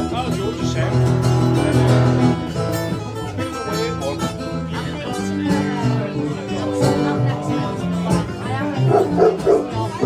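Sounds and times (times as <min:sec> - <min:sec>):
acoustic guitars playing: 0:00.0 - 0:10.0.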